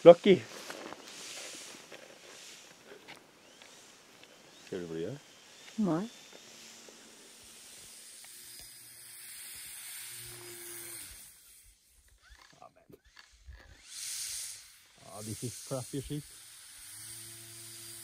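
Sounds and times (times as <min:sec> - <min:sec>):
skis crunching through snow: 0:00.0 - 0:03.6
faint steady hiss: 0:00.0 - 0:12.2.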